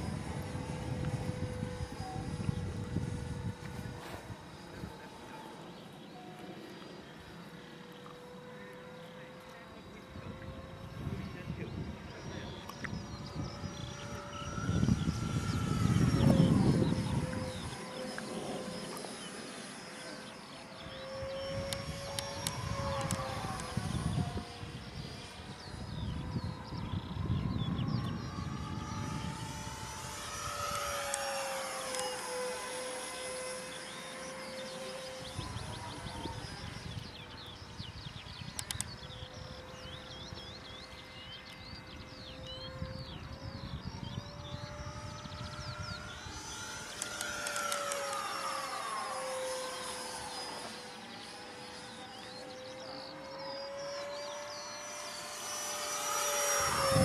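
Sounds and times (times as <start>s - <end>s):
model jet fan whine: 0.0s - 57.0s.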